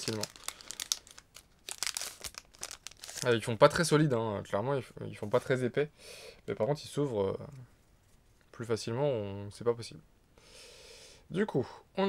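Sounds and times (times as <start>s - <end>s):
foil wrapper crinkling: 0.0s - 3.5s.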